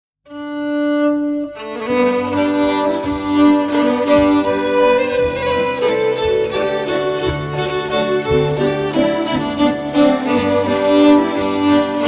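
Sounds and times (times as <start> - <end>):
fiddle playing a waltz: 0.3 - 12.0.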